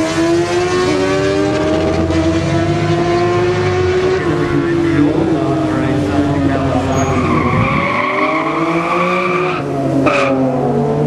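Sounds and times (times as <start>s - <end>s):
engine note rising in pitch: 0.0s - 10.7s.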